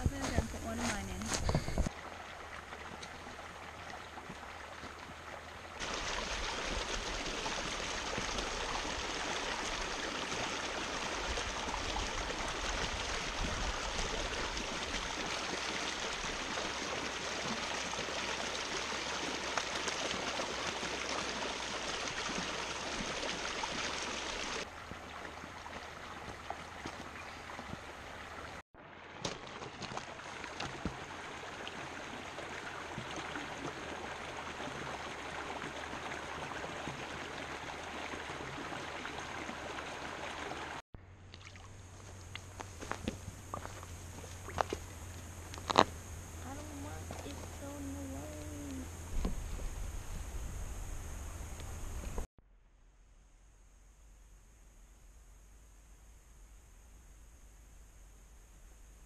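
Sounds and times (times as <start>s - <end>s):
water rushing over rocks: 1.7s - 40.8s.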